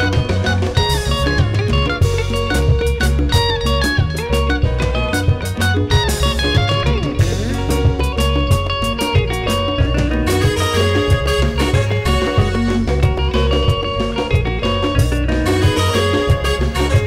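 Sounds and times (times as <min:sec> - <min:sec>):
electric guitar: 0:00.0 - 0:17.0
live band dance music: 0:00.0 - 0:17.0.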